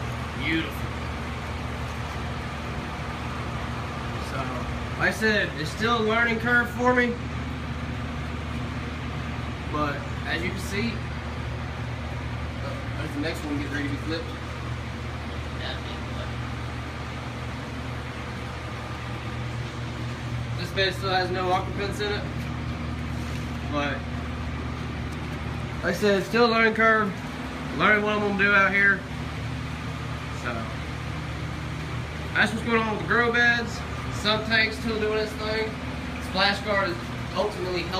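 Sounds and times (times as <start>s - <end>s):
low machine hum: 0.0s - 37.9s.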